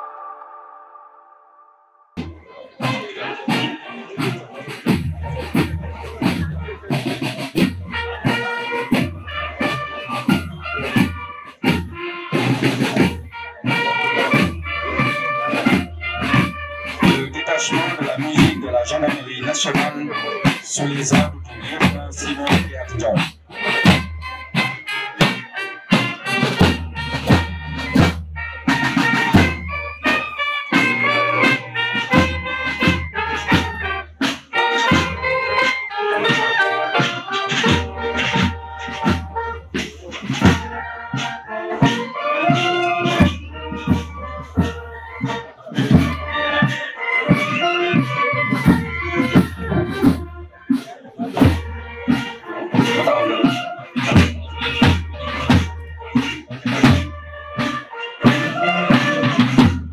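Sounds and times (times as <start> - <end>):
brass band playing a march: 2.2 - 59.9
marching beat: 2.2 - 59.9.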